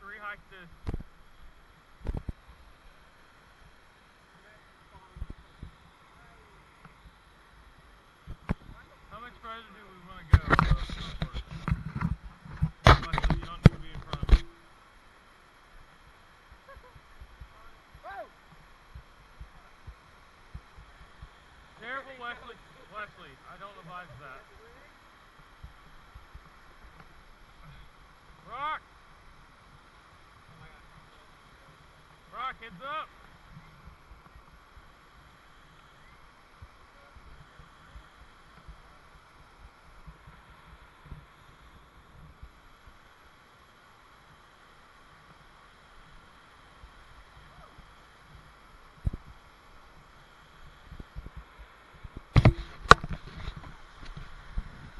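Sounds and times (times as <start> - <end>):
rocky creek rushing: 0.0 - 54.9.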